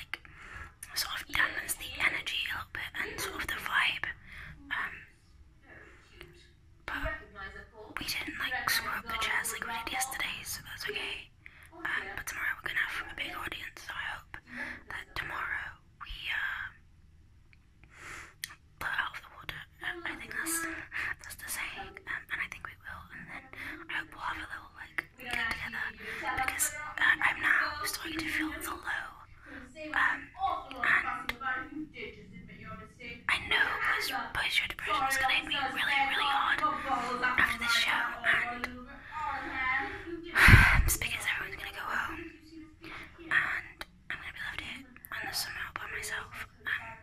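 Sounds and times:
woman whispering: 0.0s - 16.8s, 18.4s - 47.0s.

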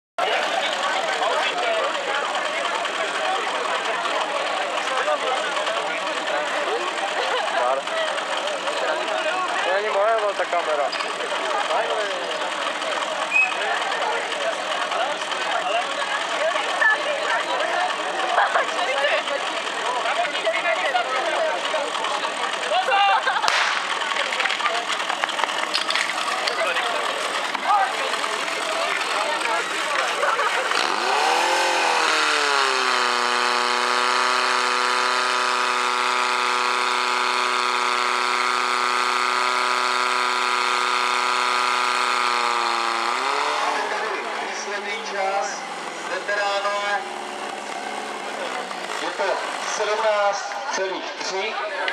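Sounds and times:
spectators shouting and cheering: 0.2s - 10.1s, 10.7s - 51.9s
pump engine revving: 0.2s - 50.6s
sharp crack: 23.4s - 30.1s.

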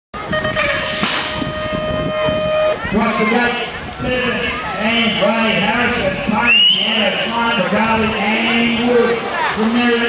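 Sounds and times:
high start gate beep: 0.2s - 2.8s.

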